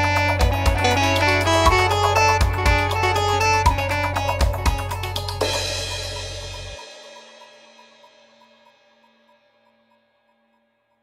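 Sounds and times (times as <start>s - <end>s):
cymbal wash: 5.0s - 10.5s.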